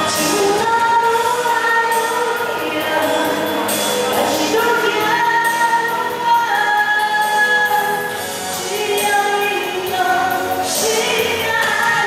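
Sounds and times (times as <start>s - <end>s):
instrumental accompaniment: 0.0s - 12.0s
woman singing into microphone: 0.0s - 12.0s.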